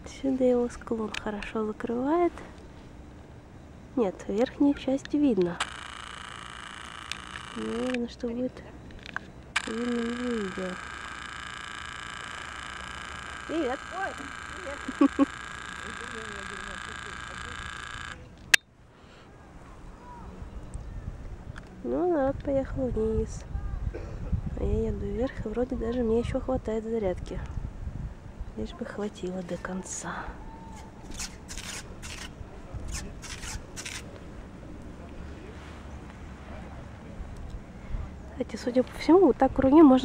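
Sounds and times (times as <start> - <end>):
high mechanical whine: 0.0 - 18.8
camera handling rustling: 8.8 - 9.8.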